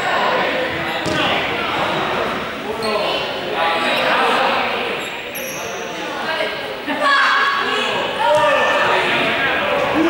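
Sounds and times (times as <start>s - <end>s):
ball bouncing on hall floor: 1.0s - 1.4s.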